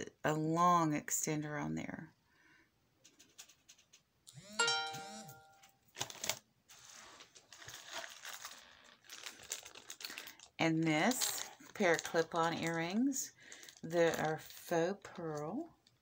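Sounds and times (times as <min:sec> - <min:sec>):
packaging rustling and crinkling: 0:05.9 - 0:16.0.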